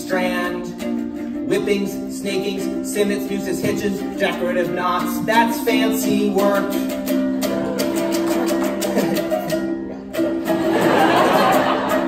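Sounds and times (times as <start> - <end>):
ukulele strumming: 0.0 - 12.0.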